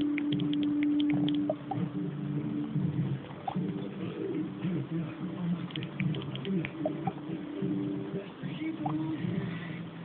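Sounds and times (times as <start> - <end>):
phone keyboard typing clicks: 0.0 - 1.6.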